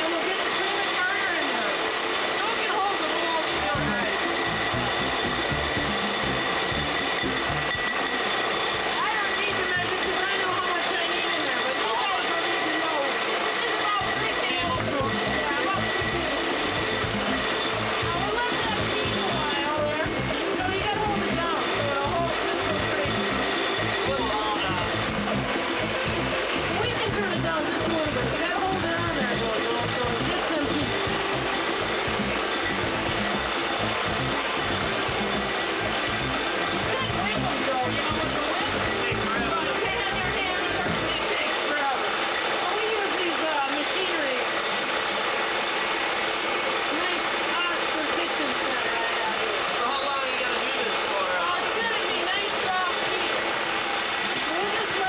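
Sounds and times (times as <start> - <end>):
electric stand mixer whining: 0.0 - 55.0.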